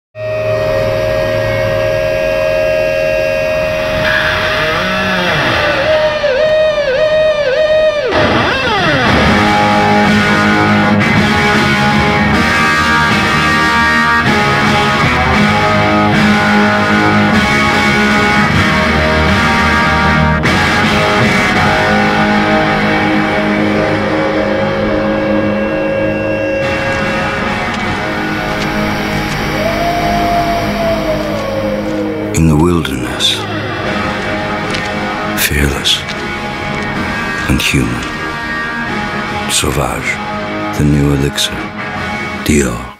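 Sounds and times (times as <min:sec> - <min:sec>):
electric guitar feedback note: 0:00.2 - 0:42.9.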